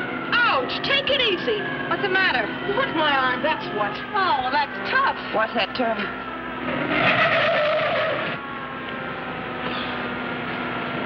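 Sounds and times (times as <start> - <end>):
car engine at speed: 6.1 - 11.0
tyres screeching: 6.7 - 8.4.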